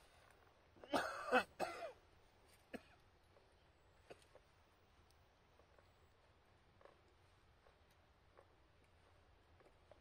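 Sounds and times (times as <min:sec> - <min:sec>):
person clearing throat: 0:00.8 - 0:02.0.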